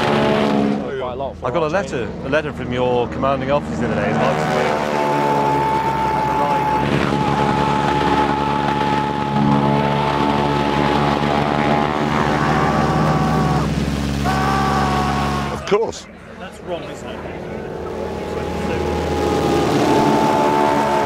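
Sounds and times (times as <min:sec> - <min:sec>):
biplane radial engine in flight: 0:01.3 - 0:21.0.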